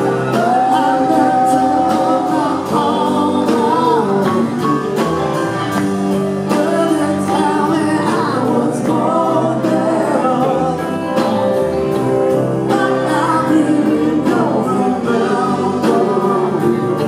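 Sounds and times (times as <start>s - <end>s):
electric guitars: 0.0s - 17.0s
keyboards: 0.0s - 17.0s
person singing: 0.0s - 17.0s.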